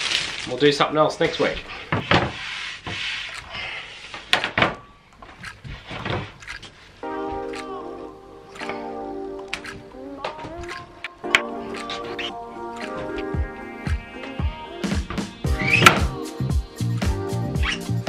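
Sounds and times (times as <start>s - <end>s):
background music: 6.9s - 18.0s.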